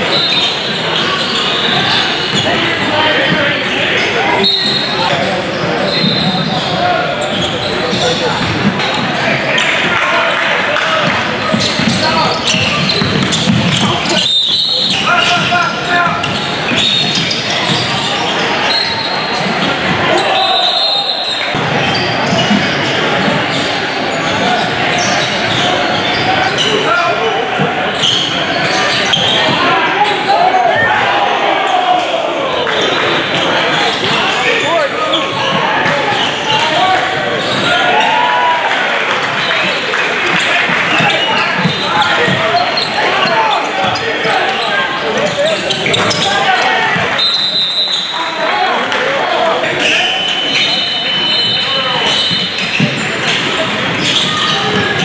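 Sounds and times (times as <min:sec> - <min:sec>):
indistinct voices: 0:00.0 - 0:55.0
ball bouncing on hardwood court: 0:11.0 - 0:13.9.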